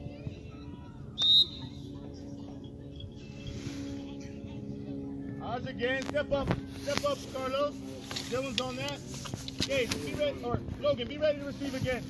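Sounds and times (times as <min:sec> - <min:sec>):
distant voices: 0:00.0 - 0:12.0
steady low hum: 0:00.0 - 0:12.0
referee's whistle blast: 0:01.2 - 0:01.7.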